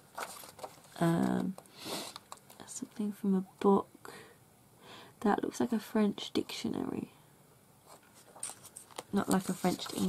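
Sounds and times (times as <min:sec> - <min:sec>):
paper sheets rustling: 0:00.0 - 0:01.5, 0:07.9 - 0:10.0.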